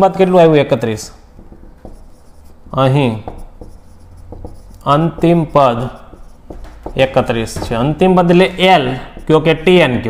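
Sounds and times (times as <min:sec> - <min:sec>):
marker pen writing on whiteboard: 0:01.3 - 0:10.0.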